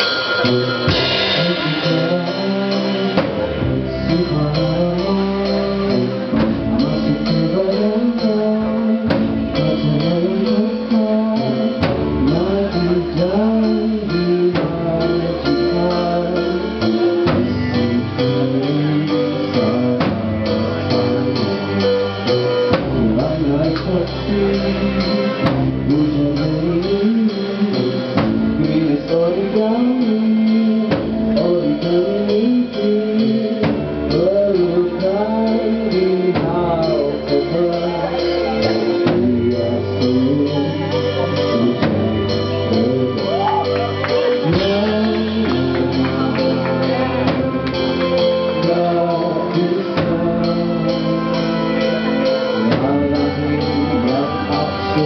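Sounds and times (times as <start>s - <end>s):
sharp drum hit: 0.0s - 3.8s
drums: 0.0s - 55.0s
electric guitar: 0.0s - 55.0s
keyboard: 0.0s - 55.0s
live band playing: 0.0s - 55.0s
person singing: 0.0s - 55.0s.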